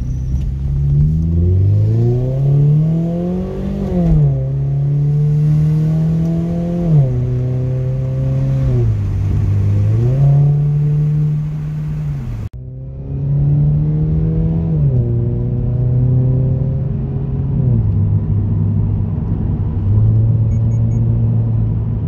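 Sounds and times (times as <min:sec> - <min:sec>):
car engine accelerating: 0:00.0 - 0:22.0.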